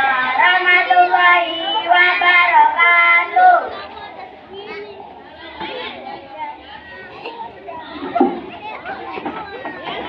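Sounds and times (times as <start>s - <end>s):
loud child voice: 0.0s - 9.6s
children chattering and calling out: 0.0s - 10.0s.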